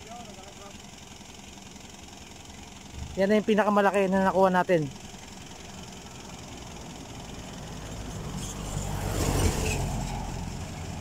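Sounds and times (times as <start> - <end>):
vehicle engine rumble: 0.0 - 11.0
tyre noise on road: 7.7 - 11.0.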